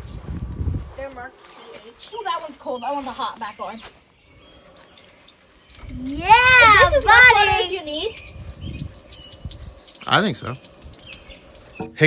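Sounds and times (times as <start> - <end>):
shower water spraying: 0.0 - 3.3, 4.7 - 12.0.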